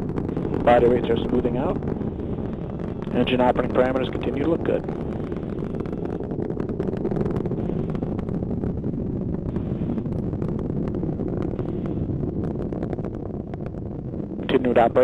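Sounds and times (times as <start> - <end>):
rocket engine rumble with crackle: 0.0 - 15.0.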